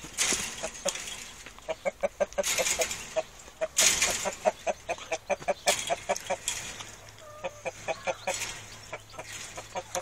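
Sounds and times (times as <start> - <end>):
chickens clucking: 0.0 - 10.0.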